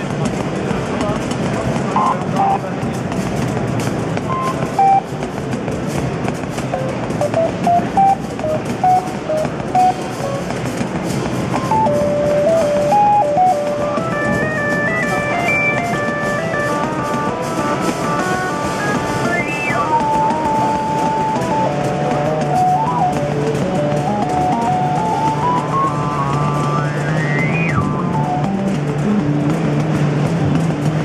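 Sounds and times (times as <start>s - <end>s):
drum machine ticks: 0.0s - 31.0s
synthesizer sequenced line: 1.9s - 2.8s, 4.2s - 5.2s, 6.7s - 31.0s.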